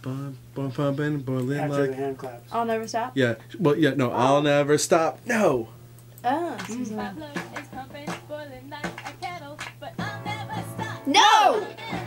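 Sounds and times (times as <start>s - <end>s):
hand claps: 6.5s - 10.6s.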